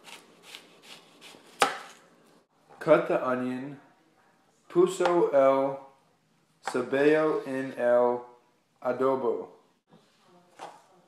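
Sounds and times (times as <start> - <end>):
knife slicing onion: 0.0 - 2.0.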